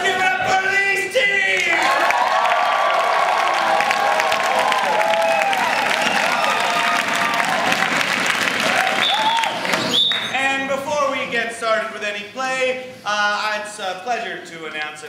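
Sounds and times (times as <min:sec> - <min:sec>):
audience cheering and calling out: 0:00.0 - 0:09.8
audience clapping: 0:01.5 - 0:10.3.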